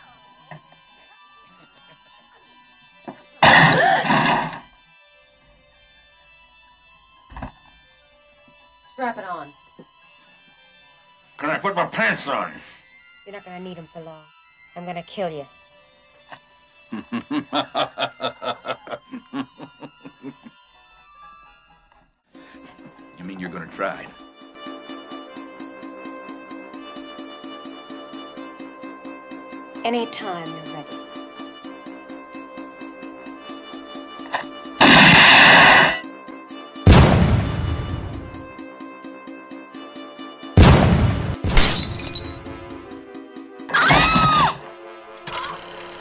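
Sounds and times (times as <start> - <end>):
music with steady pulse: 0.0 - 46.0
man laughing: 16.9 - 20.6
loud blast: 34.8 - 36.0, 36.9 - 38.4, 40.6 - 41.6
loud gunshot echoing: 36.9 - 38.1, 40.6 - 41.6.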